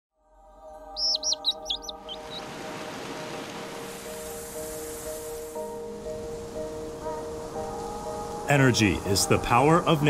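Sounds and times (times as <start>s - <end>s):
soft sustained music chord: 0.2s - 10.0s
small bird chirping: 0.9s - 2.5s.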